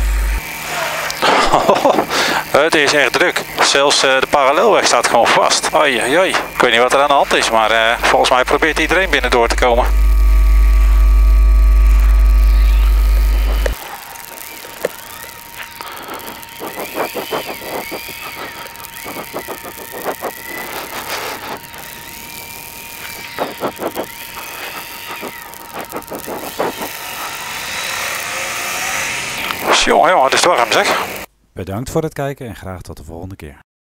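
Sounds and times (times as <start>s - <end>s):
electrical mains hum: 0.0s - 31.3s
faint steady whine: 0.0s - 31.4s
motorcycle riding noise: 11.8s - 31.3s.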